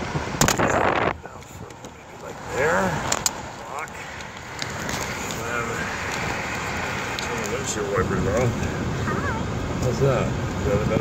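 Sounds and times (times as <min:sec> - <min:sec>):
road noise inside car: 0:00.0 - 0:11.0.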